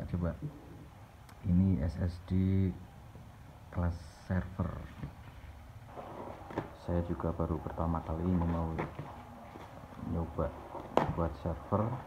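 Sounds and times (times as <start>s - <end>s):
plastic and bubble wrap crinkling: 5.1s - 12.0s.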